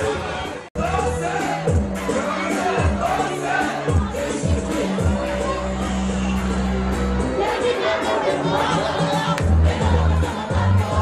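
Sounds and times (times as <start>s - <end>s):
crowd shouting and singing along: 0.0s - 11.0s
loud dance music: 0.0s - 11.0s.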